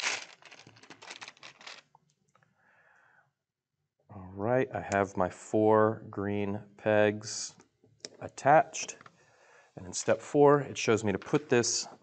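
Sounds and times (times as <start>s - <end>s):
plastic pegs rattling: 0.0s - 1.9s.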